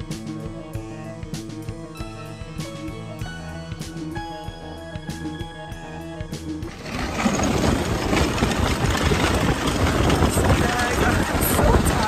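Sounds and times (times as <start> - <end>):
background music: 0.0 - 12.0
vehicle engine running over snow: 6.6 - 12.0
wind buffeting microphone: 6.7 - 12.0.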